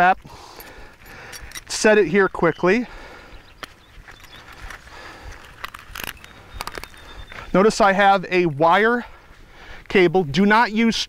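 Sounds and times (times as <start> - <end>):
wire trap clicking and rattling: 0.6 - 2.0, 3.6 - 7.2
wire tapping and scraping: 0.6 - 2.2, 3.5 - 7.5.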